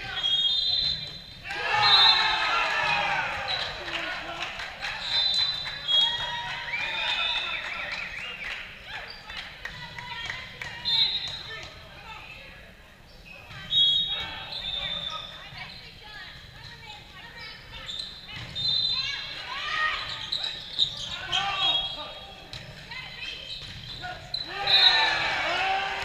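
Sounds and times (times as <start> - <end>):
sneakers squeaking on court: 0.0 - 2.2, 13.1 - 25.0
players shouting and calling: 0.0 - 26.0.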